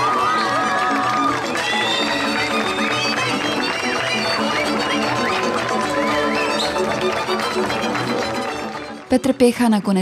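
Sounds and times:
folk band with violins and cimbalom: 0:00.1 - 0:09.2.

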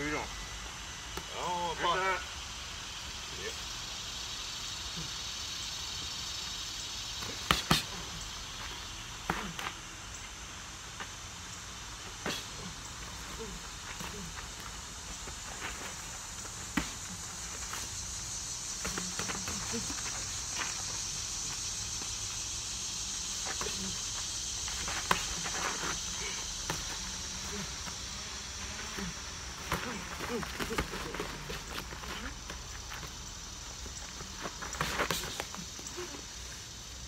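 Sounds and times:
outdoor background hiss: 0:00.0 - 0:37.0.

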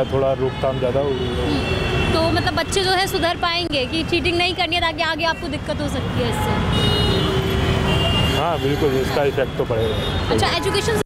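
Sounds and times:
road traffic rumbling: 0:00.0 - 0:11.0.

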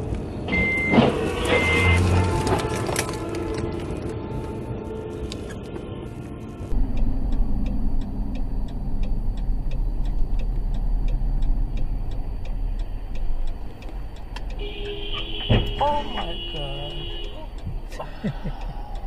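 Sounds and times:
car engine and road rumble: 0:00.0 - 0:19.0
sustained steady tone: 0:06.4 - 0:19.0
steady ticking: 0:06.7 - 0:19.0.

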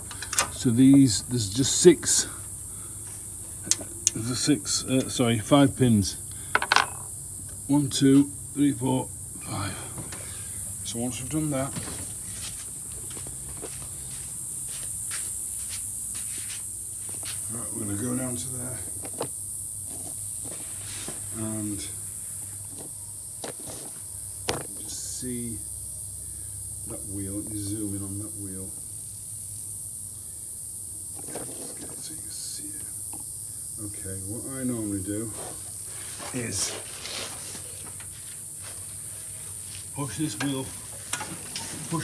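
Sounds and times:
steady high hiss: 0:00.0 - 0:42.0.

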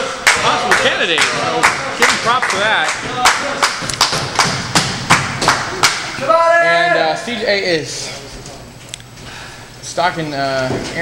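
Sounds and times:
rhythmic clapping in unison: 0:00.0 - 0:06.2.

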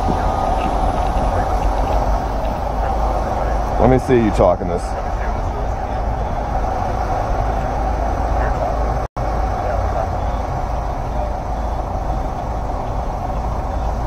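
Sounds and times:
road traffic rumble: 0:00.0 - 0:14.0.

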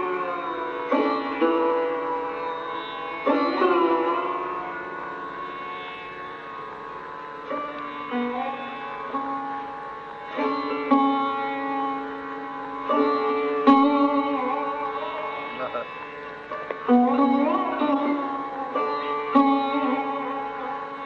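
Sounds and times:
sarod plucked notes sliding: 0:00.0 - 0:21.0.

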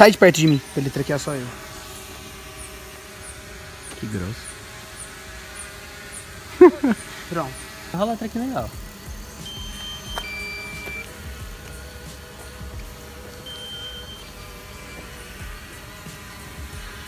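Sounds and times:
soft background music: 0:07.9 - 0:17.0
short electronic beeps: 0:09.4 - 0:11.1, 0:13.4 - 0:15.1.

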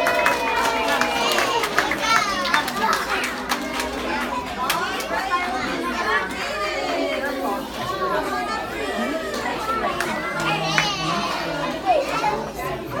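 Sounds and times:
young children chattering: 0:00.0 - 0:13.0.

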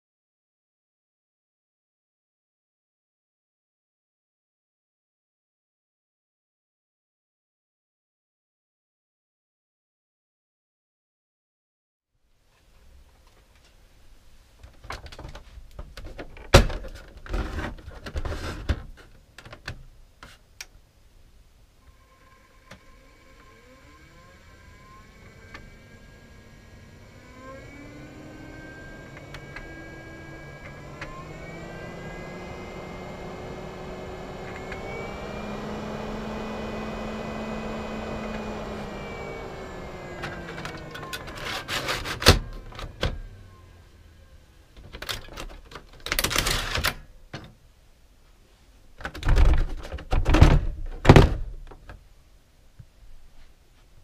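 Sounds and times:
fan motor whining: 0:21.8 - 0:44.8.

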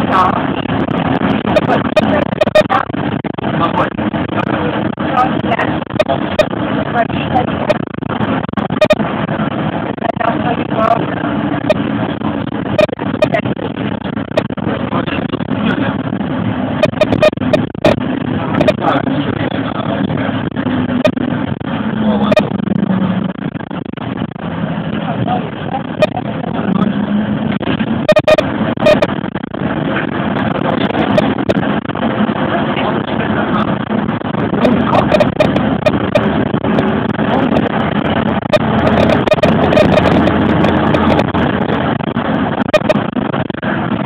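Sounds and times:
bus engine and road noise: 0:00.0 - 0:44.0.

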